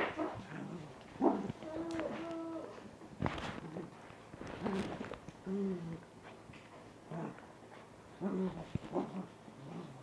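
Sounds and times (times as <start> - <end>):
small dog low vocal sounds: 4.6 - 6.1.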